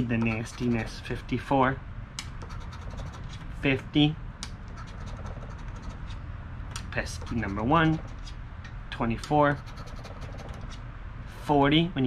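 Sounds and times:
coin scratching lottery ticket: 0.0s - 1.2s, 2.4s - 3.4s, 4.6s - 6.2s, 7.0s - 8.4s, 9.5s - 10.8s.

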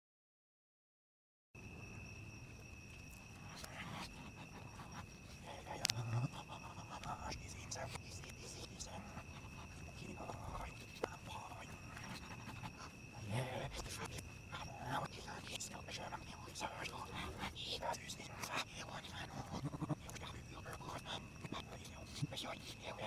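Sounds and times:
high-pitched whine: 1.6s - 23.0s
faint indistinct voice: 3.5s - 23.0s.

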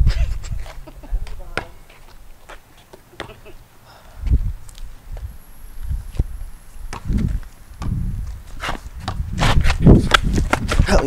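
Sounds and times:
sneakers scuffing on concrete: 0.4s - 3.5s, 4.2s - 11.0s
basketball bouncing on concrete: 1.2s - 1.8s, 2.9s - 3.4s, 6.9s - 9.4s.

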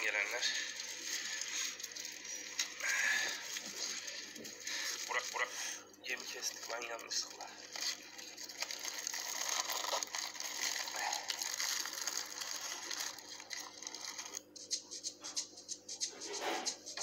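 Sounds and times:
plastic bag crinkling: 0.0s - 14.6s.

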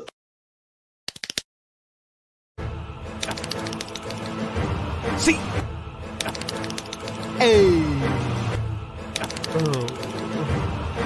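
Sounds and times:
sharp clicks: 1.1s - 1.5s, 3.2s - 4.4s, 6.2s - 7.4s, 9.1s - 10.4s
background music: 2.6s - 11.0s.

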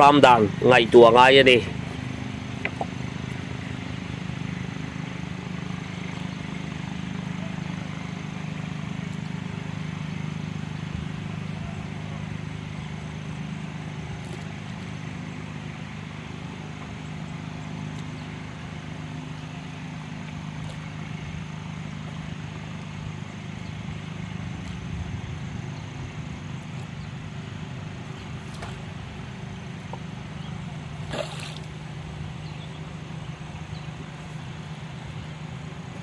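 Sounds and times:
engine humming: 0.0s - 36.0s.

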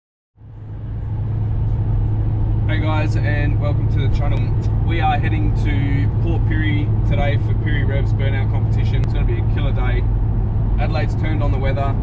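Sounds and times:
car engine drone: 0.4s - 12.0s
road noise: 0.4s - 12.0s.

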